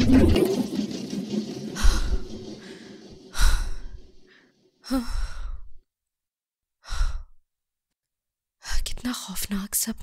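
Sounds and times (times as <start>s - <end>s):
woman breathing heavily: 1.8s - 5.8s, 6.8s - 7.4s.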